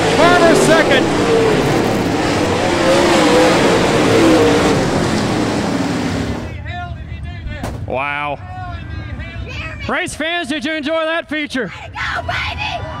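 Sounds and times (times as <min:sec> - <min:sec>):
raised voices: 0:00.0 - 0:05.2
race car engines at speed: 0:00.0 - 0:06.6.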